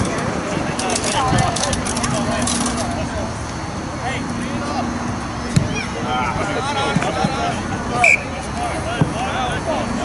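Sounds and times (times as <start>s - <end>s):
distant shouting and talking: 0.0s - 10.0s
outdoor background noise: 0.0s - 10.0s.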